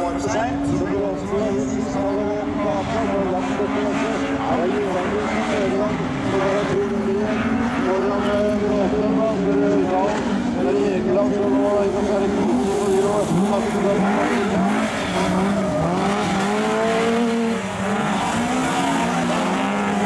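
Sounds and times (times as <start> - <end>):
race car engines at full throttle: 0.0 - 20.0.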